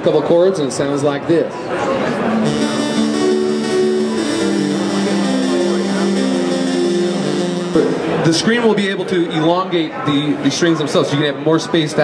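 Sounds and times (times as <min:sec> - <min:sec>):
synth guitar chords: 0:02.3 - 0:08.3.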